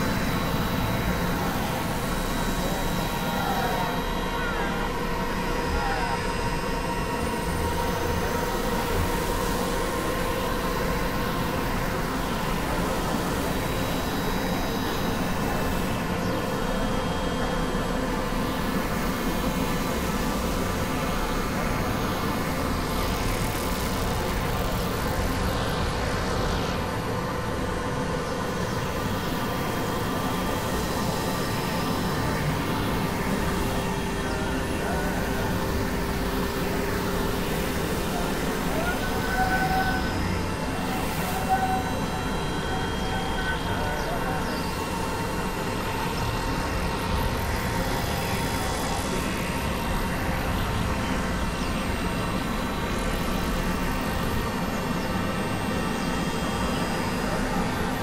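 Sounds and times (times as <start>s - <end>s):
faint held drone tones: 0.0s - 58.0s
wall of processed noise: 0.0s - 58.0s.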